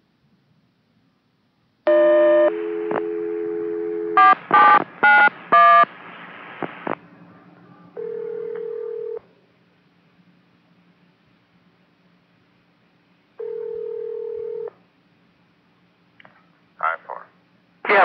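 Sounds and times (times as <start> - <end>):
dial tone: 1.9 - 5.8, 8.0 - 9.2, 13.4 - 14.7
steady tone: 1.9 - 5.9
radio hiss: 4.4 - 7.1, 16.8 - 18.0.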